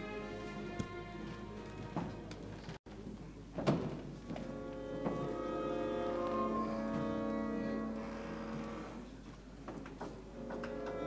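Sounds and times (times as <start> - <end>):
orchestra holding a chord: 4.4 - 9.0, 10.4 - 11.0.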